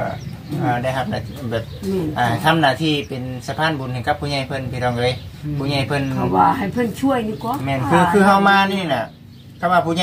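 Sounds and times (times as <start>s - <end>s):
man talking: 0.0s - 6.6s.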